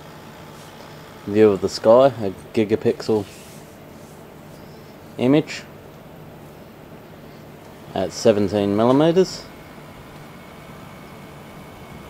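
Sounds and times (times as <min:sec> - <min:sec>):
faint high motor whine: 0:00.0 - 0:12.0
low background noise: 0:00.0 - 0:12.0.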